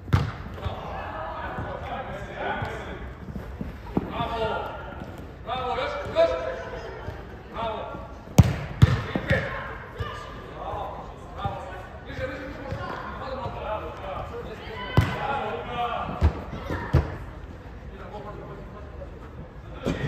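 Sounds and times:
football kicks echoing: 0.0s - 0.9s, 8.3s - 10.2s, 14.9s - 15.3s.

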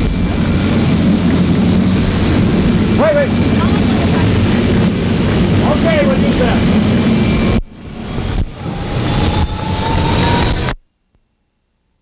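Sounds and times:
jet engines running: 0.0s - 10.8s.

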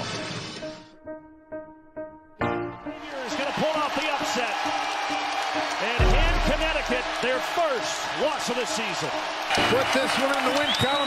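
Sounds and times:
arena crowd noise: 3.0s - 11.0s.

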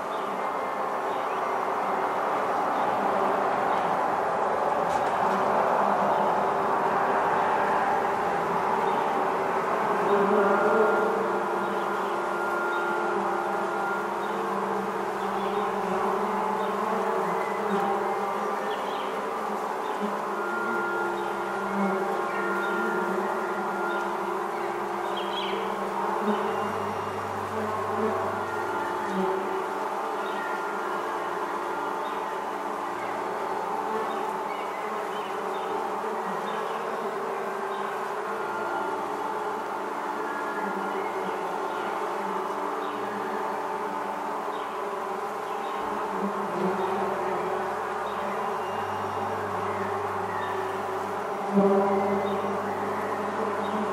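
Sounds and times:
held ambient tones: 0.0s - 53.9s
bee swarm buzzing: 0.1s - 53.9s.

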